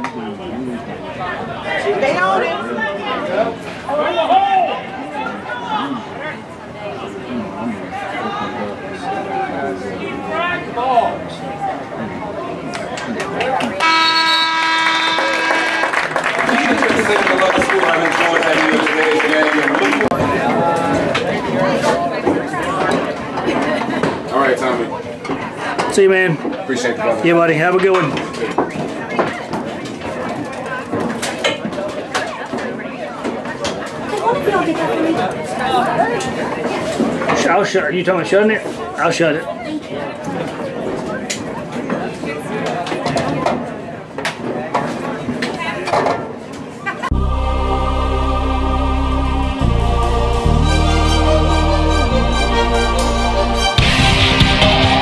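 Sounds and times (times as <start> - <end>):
spectators chatting: 0.0 - 55.0
scoreboard horn steady tone: 13.8 - 16.2, 47.1 - 55.0.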